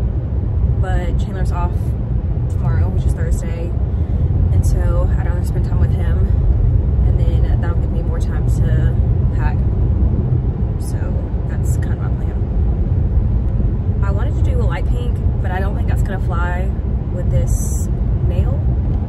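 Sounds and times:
car cabin road rumble: 0.0s - 19.0s
woman talking: 0.8s - 1.9s, 2.5s - 3.7s, 4.5s - 6.4s, 7.0s - 9.6s, 10.8s - 12.5s, 14.0s - 18.6s.

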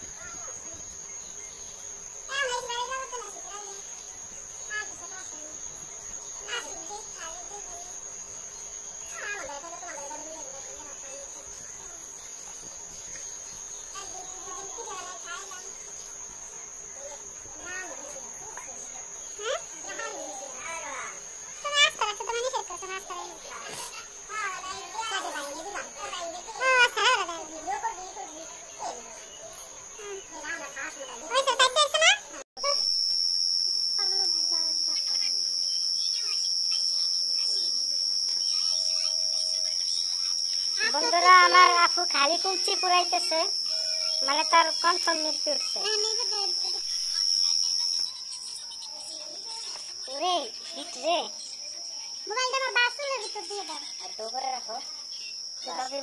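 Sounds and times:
crickets trilling: 0.0s - 56.0s
night insects chorus: 0.0s - 56.0s.

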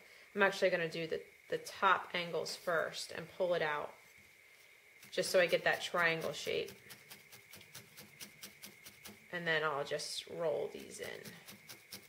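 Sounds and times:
felting needle poking wool: 5.0s - 9.7s, 10.6s - 12.0s.

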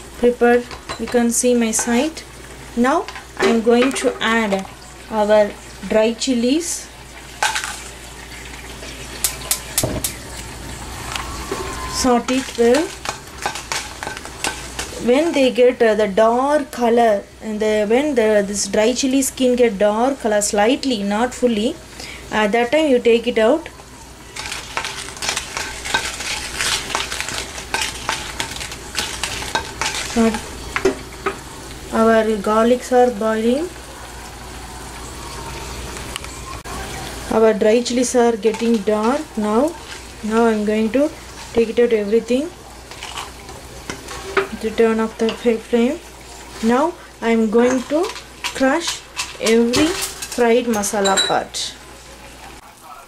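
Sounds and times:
chillies sizzling in oil: 0.0s - 53.0s
spatula scraping a wok: 11.0s - 15.6s, 24.3s - 30.9s, 38.1s - 41.9s, 42.7s - 50.5s.

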